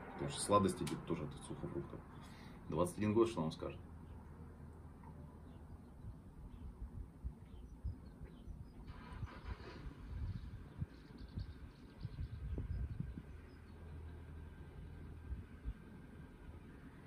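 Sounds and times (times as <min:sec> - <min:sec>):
wind rumble on microphone: 0:06.0 - 0:13.7, 0:15.2 - 0:15.8.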